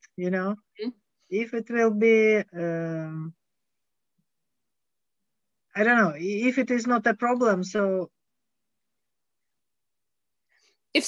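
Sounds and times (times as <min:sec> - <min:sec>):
person speaking: 0:00.0 - 0:03.4.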